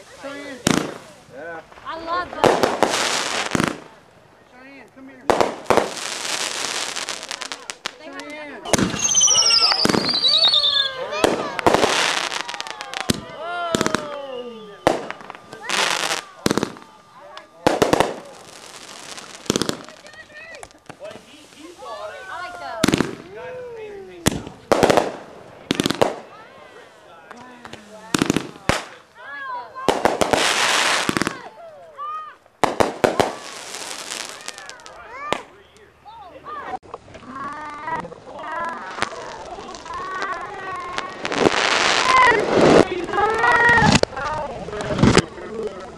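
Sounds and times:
fireworks hissing bursts: 0.0 - 35.8, 37.0 - 45.6
fireworks bangs and crackles: 0.0 - 45.9
people calling out: 6.4 - 45.9
falling firework whistle: 8.7 - 19.9.

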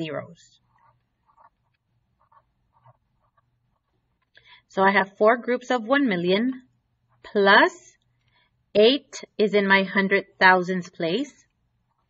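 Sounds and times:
felt-tip pen scratching paper: 0.0 - 4.0.

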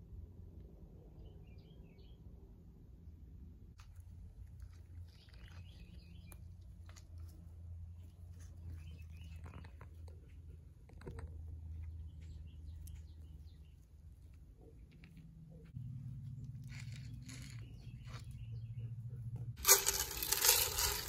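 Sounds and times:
turtles nibbling fruit: 3.8 - 21.0
turtles moving over dry leaves: 19.6 - 21.0.

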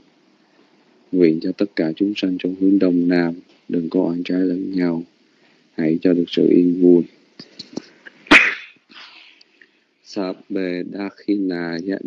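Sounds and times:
sharp burst of noise: 8.0 - 9.2.

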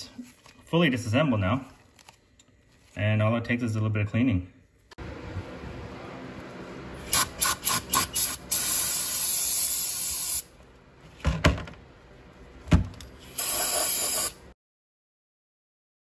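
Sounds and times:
aerosol spraying: 7.0 - 10.5, 13.2 - 14.4.

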